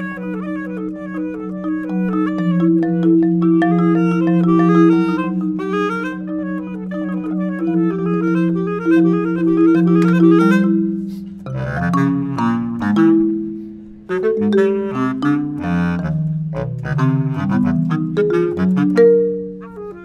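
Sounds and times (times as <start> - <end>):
bass clarinet: 0.0 - 20.0
marimba: 0.0 - 20.0.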